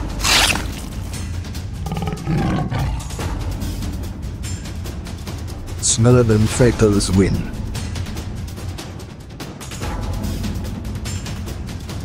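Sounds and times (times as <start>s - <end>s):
background music: 0.0s - 12.0s
big cat roar: 1.8s - 3.4s.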